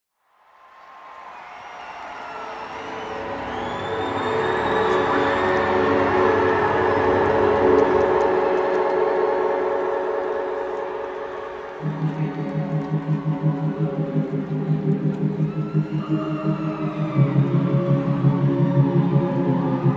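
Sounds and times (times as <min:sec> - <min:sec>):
noisy arena crowd: 0:00.3 - 0:19.9
sustained held chord music: 0:03.2 - 0:19.9.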